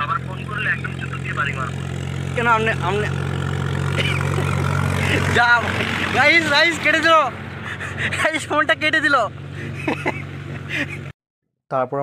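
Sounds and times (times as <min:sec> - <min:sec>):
man laughing: 0:03.9 - 0:06.6, 0:07.5 - 0:08.9, 0:09.5 - 0:11.2.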